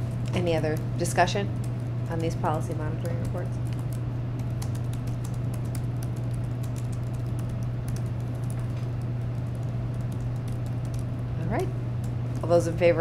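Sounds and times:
low room hum: 0:00.0 - 0:13.0
laptop keyboard typing: 0:01.6 - 0:11.1.

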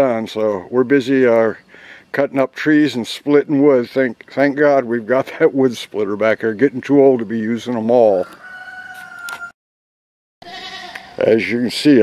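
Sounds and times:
faint outdoor background noise: 0:00.0 - 0:09.5, 0:10.4 - 0:12.0.

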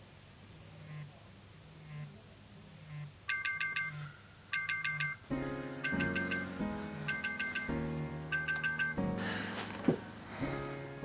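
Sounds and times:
phone buzzing on wooden table: 0:02.9 - 0:05.2
quick high alarm beeps: 0:03.3 - 0:05.2, 0:05.8 - 0:07.8.

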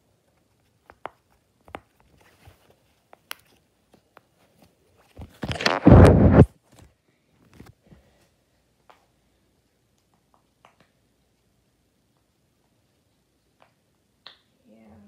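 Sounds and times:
microphone handling rumble: 0:05.5 - 0:06.5.

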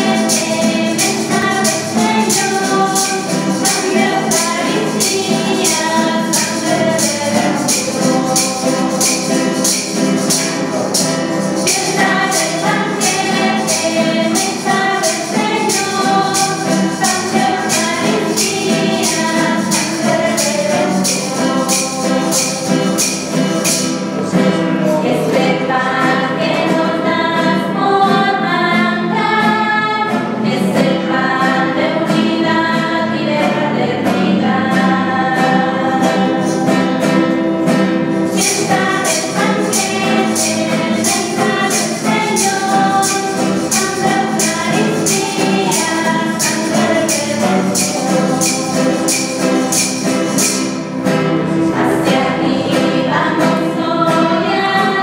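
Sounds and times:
church choir singing: 0:00.0 - 0:55.0
tambourine shaken on a beat: 0:00.0 - 0:55.0.

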